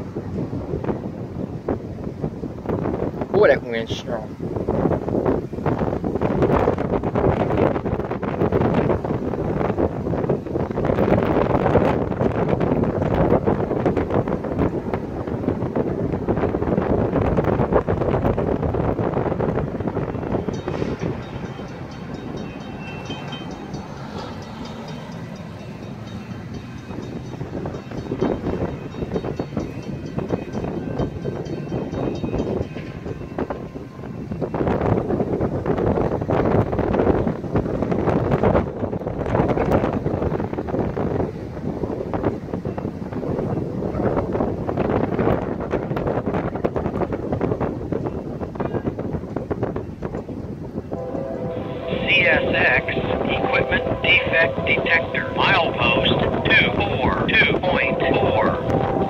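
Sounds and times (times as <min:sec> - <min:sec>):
gusty wind buffeting microphone: 0:00.0 - 0:59.0.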